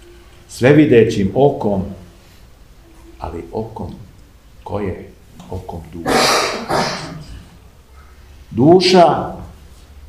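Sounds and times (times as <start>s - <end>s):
man's harsh voice bursts: 4.7s - 7.4s.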